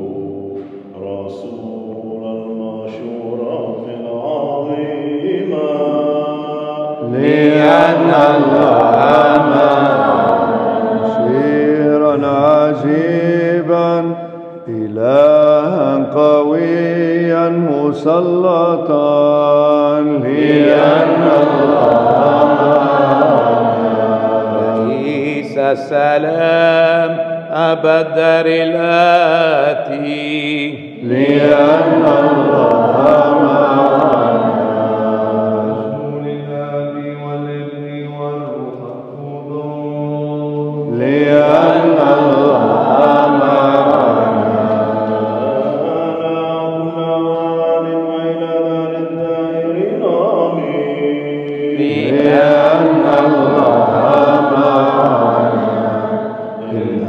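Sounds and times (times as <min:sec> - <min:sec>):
voices chanting: 0:04.3 - 0:14.0, 0:19.0 - 0:26.9, 0:29.9 - 0:37.1, 0:38.5 - 0:48.2, 0:49.8 - 0:57.0.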